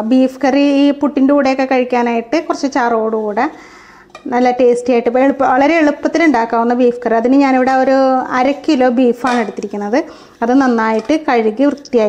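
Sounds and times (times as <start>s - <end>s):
woman speaking: 0.0s - 3.6s, 4.2s - 12.0s.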